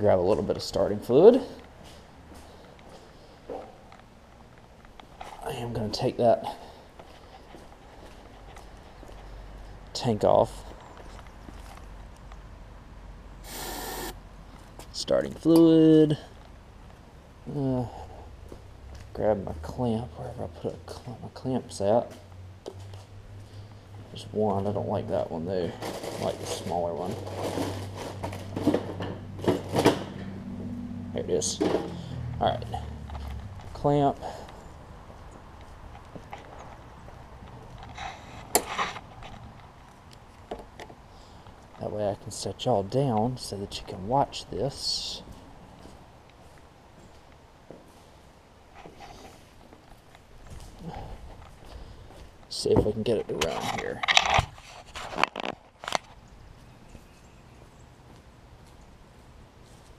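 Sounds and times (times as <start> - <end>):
aerosol spray hiss: 13.5 - 14.2
footsteps on asphalt: 18.4 - 19.2, 32.9 - 40.7, 56.0 - 59.9.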